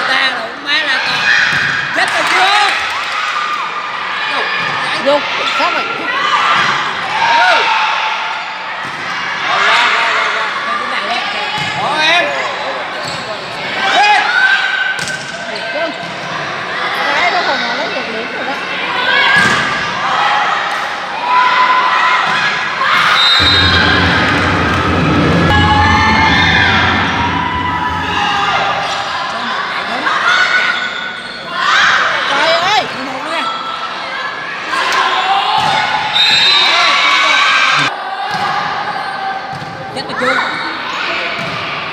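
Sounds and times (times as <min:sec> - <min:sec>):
steady low drone: 0:23.4 - 0:29.3.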